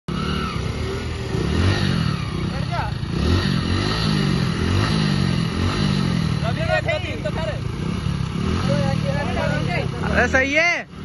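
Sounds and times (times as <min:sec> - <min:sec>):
motorcycle engines revving: 0:00.1 - 0:11.0.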